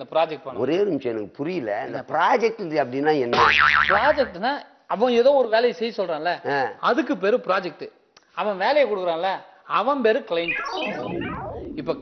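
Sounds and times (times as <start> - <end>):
men talking: 0.0 - 12.0
comic boing sound effect: 3.4 - 4.3, 10.5 - 12.0.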